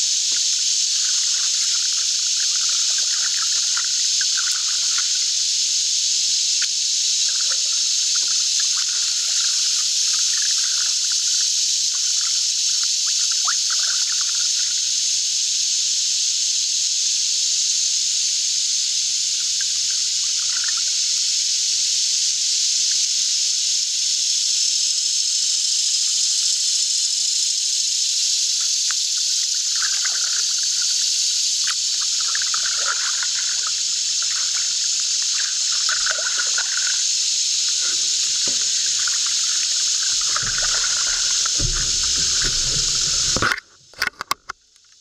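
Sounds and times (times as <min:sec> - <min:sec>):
steady high-pitched hiss: 0:00.0 - 0:45.0
water dripping off a paddle: 0:00.1 - 0:14.8, 0:28.6 - 0:43.6.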